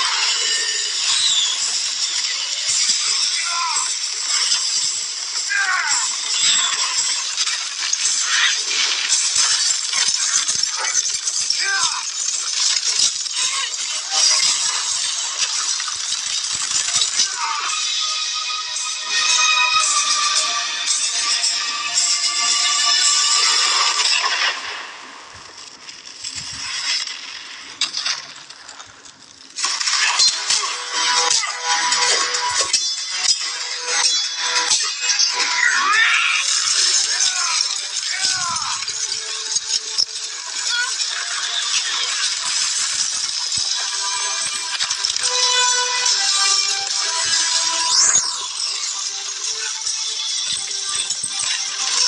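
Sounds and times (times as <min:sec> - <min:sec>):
dense film music: 0:00.0 - 0:28.2, 0:29.5 - 0:52.0.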